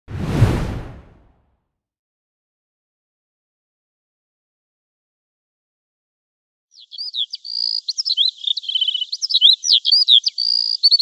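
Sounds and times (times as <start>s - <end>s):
deep low boom: 0.1s - 1.3s
whoosh: 0.1s - 1.4s.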